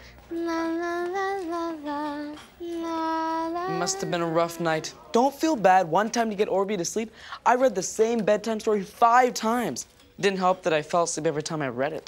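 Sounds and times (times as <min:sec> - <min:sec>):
person humming a lullaby: 0:00.3 - 0:04.8.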